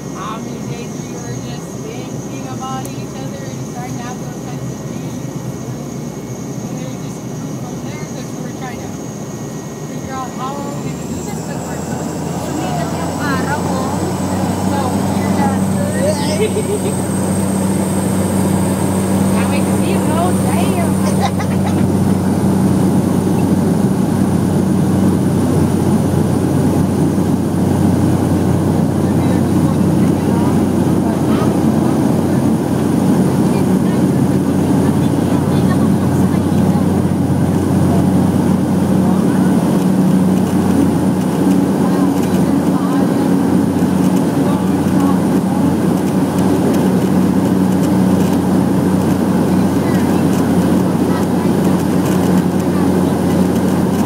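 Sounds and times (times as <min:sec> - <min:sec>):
propeller plane engine drone: 0:00.0 - 0:54.0.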